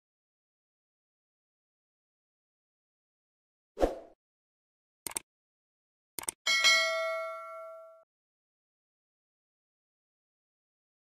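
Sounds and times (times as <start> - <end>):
notification bell ding: 6.5 - 8.0.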